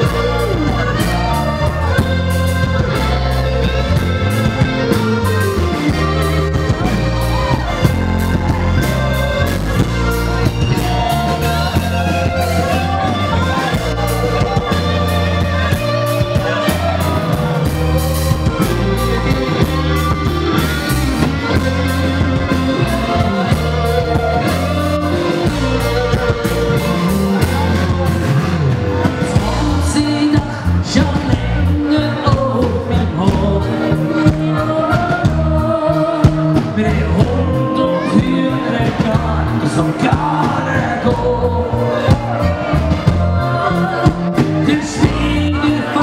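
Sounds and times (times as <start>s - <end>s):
electric guitar: 0.0s - 46.0s
man singing: 0.0s - 46.0s
steady drum beat: 0.0s - 46.0s.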